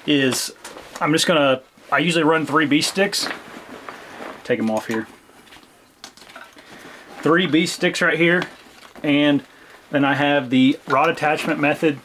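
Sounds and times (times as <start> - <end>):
small clicks and knocks: 4.7 - 6.6.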